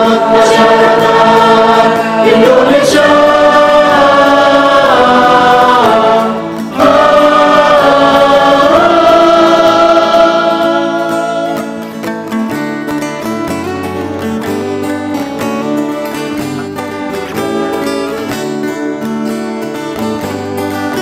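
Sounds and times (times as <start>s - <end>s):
mixed choir singing in harmony: 0.0s - 11.9s.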